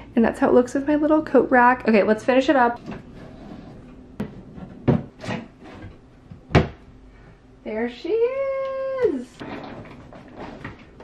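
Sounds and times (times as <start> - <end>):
furniture parts knocking: 4.2 - 6.8.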